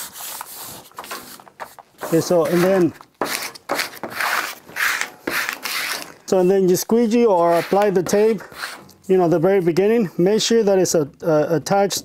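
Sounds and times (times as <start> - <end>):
hands rubbing paper tape: 0.0 - 6.7, 7.4 - 9.0.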